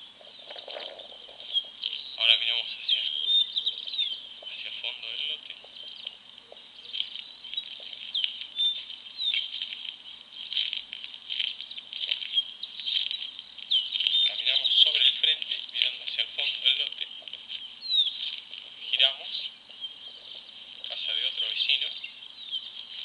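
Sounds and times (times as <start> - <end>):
small birds chirping: 0.0 - 23.0.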